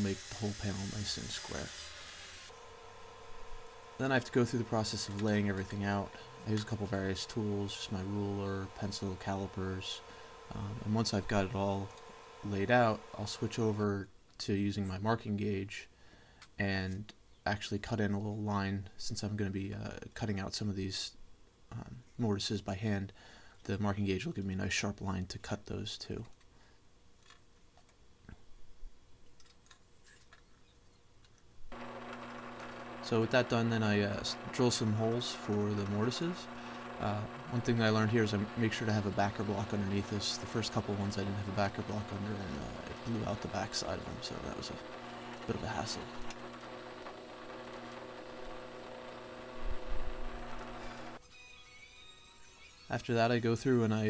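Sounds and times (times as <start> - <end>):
drill press motor humming: 0.0 - 13.8, 31.7 - 51.2.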